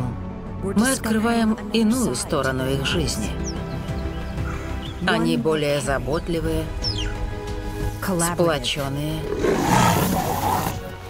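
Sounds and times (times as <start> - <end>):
background music: 0.0 - 11.0
big cat roaring: 9.2 - 10.9.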